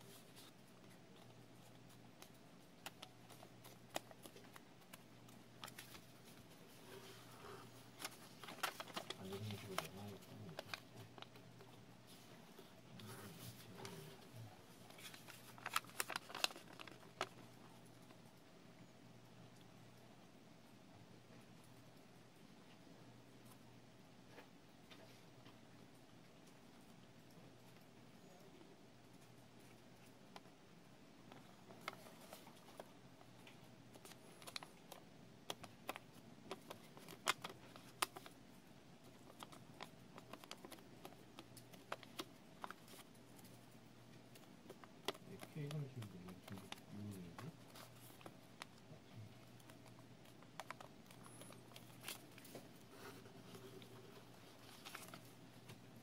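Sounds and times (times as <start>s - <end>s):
paper crackling: 0.0s - 11.5s, 14.7s - 18.1s, 31.3s - 38.4s, 39.0s - 56.0s.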